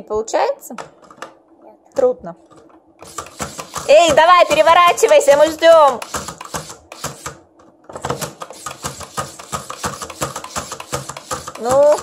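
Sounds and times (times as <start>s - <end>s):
plastic toy clicking rapidly: 3.0s - 7.4s, 8.1s - 12.0s.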